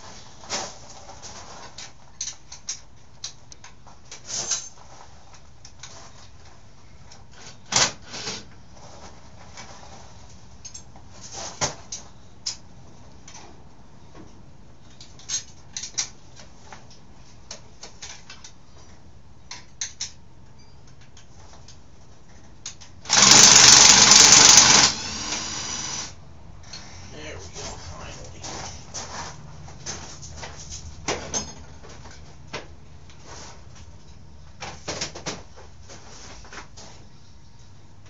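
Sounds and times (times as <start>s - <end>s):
power tool running: 23.1s - 26.2s.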